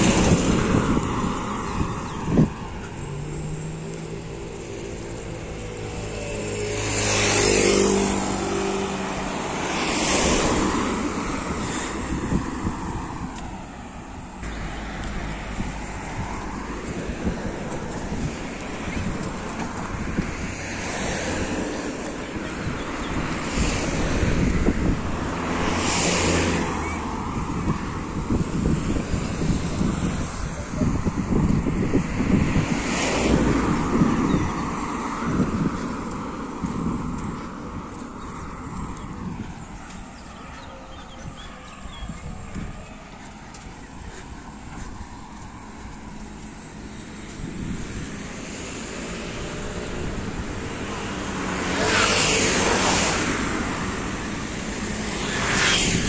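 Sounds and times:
cars passing by: 0.0 - 56.0.

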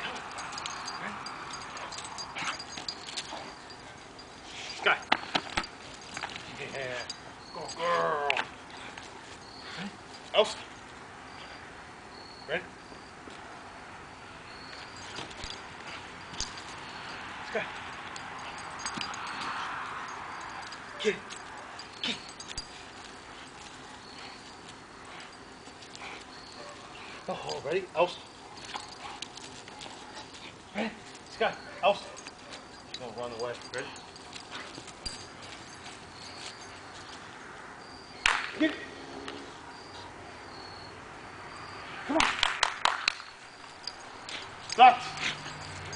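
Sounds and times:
rough dog noise: 0.0 - 7.2, 43.6 - 45.9.

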